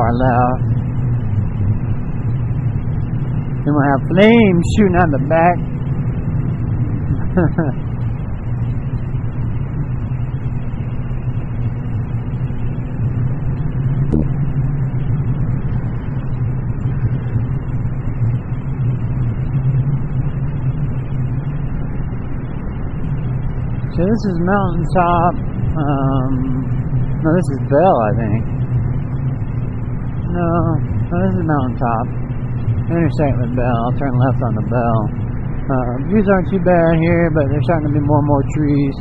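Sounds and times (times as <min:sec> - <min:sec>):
motorcycle engine running: 0:00.0 - 0:39.0
wind noise: 0:00.0 - 0:39.0
person laughing: 0:07.2 - 0:07.8.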